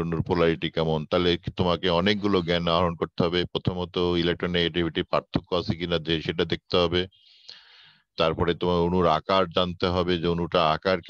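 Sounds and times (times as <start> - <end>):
man lecturing: 0.0 - 11.0
faint hiss: 5.3 - 8.4.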